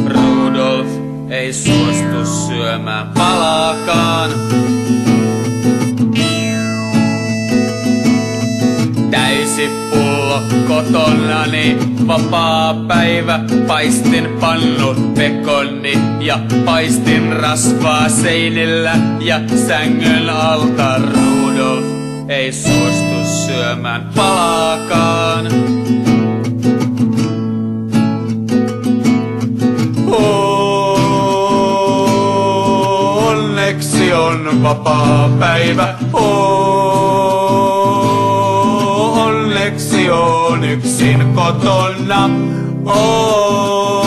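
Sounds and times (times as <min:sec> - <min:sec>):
sustained bass notes: 0:00.0 - 0:13.3, 0:17.3 - 0:26.5
folk-rock band with guitar: 0:00.0 - 0:44.0.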